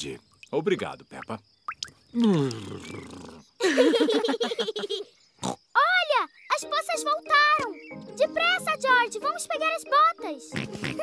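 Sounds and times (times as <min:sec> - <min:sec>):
cartoon characters laughing: 0:03.6 - 0:05.1
cartoon pig snorting: 0:10.6 - 0:11.0.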